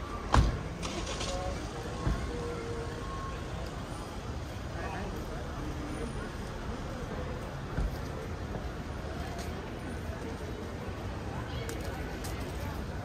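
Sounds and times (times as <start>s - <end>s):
traffic rumble: 0.0s - 13.0s
voices of passers-by: 0.0s - 13.0s.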